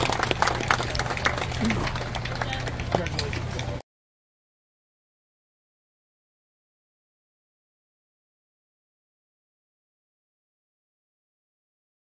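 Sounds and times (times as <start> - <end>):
close hand clapping: 0.0 - 3.8
crowd clapping: 0.0 - 3.8.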